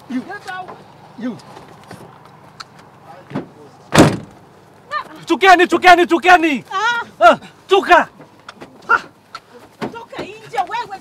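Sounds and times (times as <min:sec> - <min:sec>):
van door slamming: 0:03.3 - 0:04.4.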